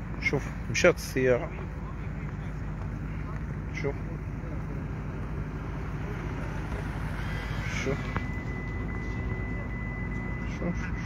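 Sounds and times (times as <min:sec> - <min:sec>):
street background rumble: 0:00.0 - 0:11.0
thin high whine: 0:04.4 - 0:11.0.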